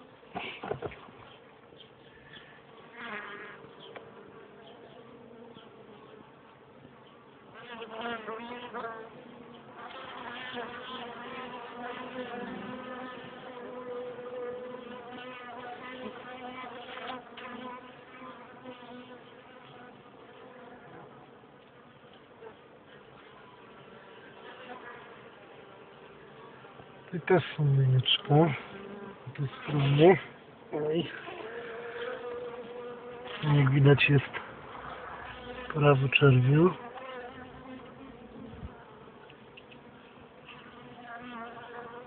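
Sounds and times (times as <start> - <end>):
honeybees buzzing: 0.0 - 42.0.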